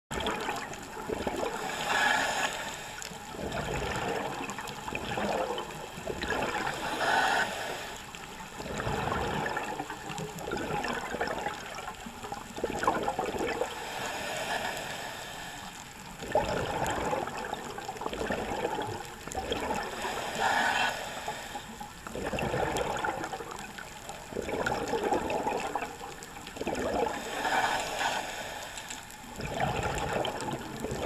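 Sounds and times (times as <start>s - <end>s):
bubbles gurgling underwater: 0.1s - 2.1s, 3.2s - 7.2s, 8.4s - 13.8s, 16.0s - 20.2s, 21.7s - 27.3s, 29.2s - 31.0s.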